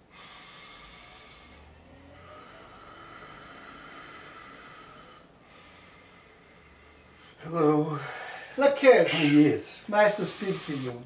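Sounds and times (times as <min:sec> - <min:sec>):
man breathing deeply: 0:00.0 - 0:11.0.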